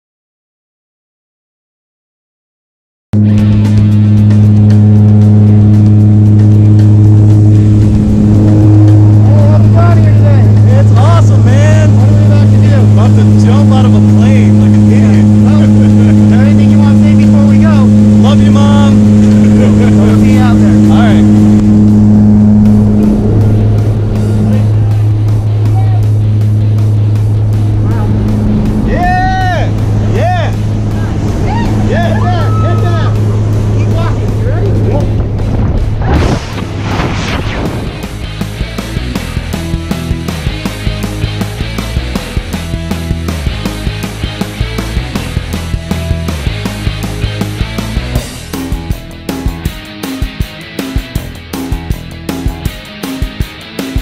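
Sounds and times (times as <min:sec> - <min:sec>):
propeller aircraft engines humming: 0:03.2 - 0:54.0
voices calling out: 0:27.7 - 0:35.1.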